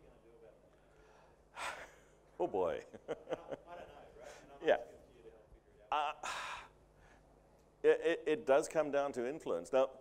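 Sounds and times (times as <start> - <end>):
man speaking: 2.4 - 6.5, 7.8 - 10.0.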